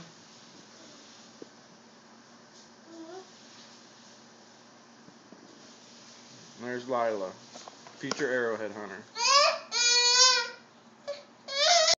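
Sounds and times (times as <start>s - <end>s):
toddler high-pitched calls: 9.2s - 12.0s.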